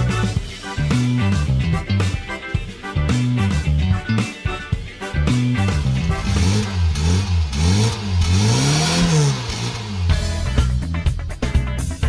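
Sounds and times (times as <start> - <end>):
car engine revving: 5.1 - 11.2.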